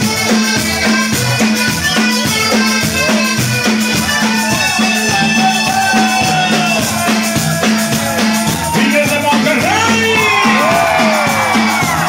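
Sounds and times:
live cumbia band playing: 0.0 - 12.0
pulsing bass notes: 0.0 - 12.0
crowd whooping and yelling: 4.0 - 12.0.

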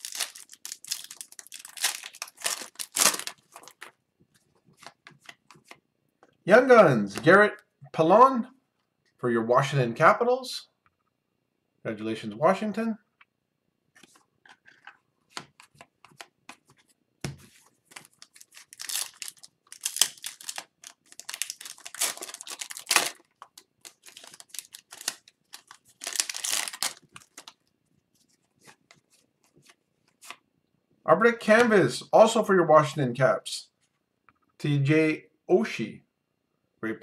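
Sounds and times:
foil wrappers tearing and crinkling: 0.0 - 3.9, 17.9 - 27.6
cards sliding and shuffling: 4.7 - 5.8, 14.0 - 27.5, 28.2 - 30.4.

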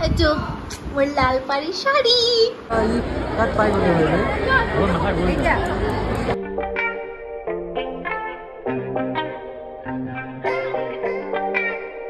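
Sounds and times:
woman speaking: 0.0 - 4.2
people talking at once: 0.0 - 6.4
plucked guitar music: 4.9 - 12.0.

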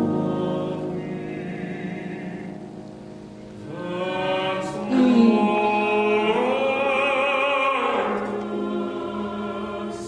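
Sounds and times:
baritone voice singing: 3.6 - 10.0.

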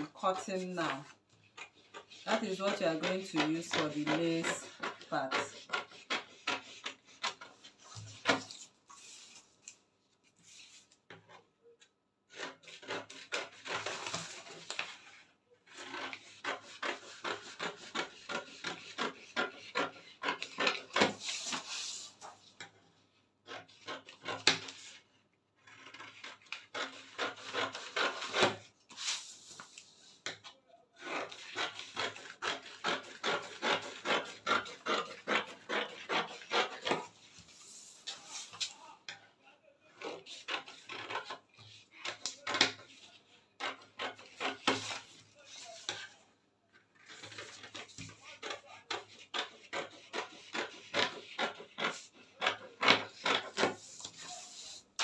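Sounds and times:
scissors snipping paper: 25.6 - 28.6, 31.0 - 37.1, 40.0 - 46.0.

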